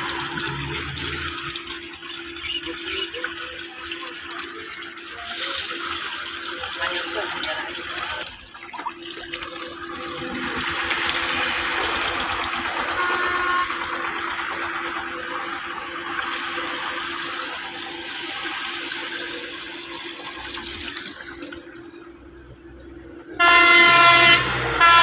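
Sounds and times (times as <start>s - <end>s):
water gushing into a tank: 0.0s - 25.0s.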